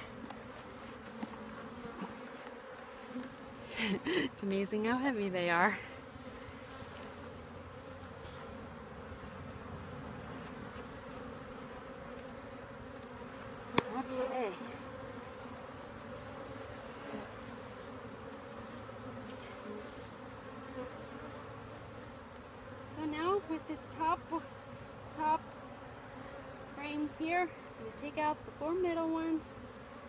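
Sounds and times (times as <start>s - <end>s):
bees buzzing: 0.0s - 30.0s.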